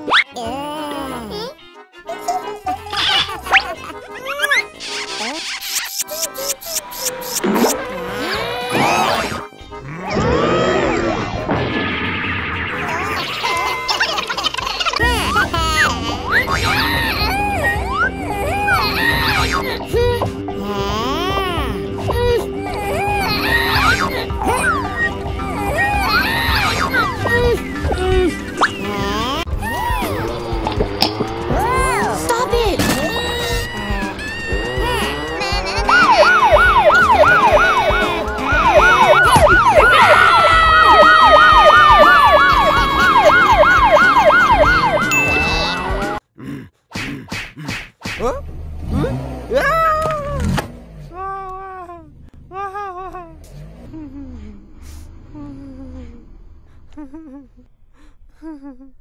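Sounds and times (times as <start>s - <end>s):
police siren wail: 33.3s - 46.2s
warbling gobbling cartoon effect: 33.8s - 46.1s
long sliding siren tone: 36.0s - 45.1s.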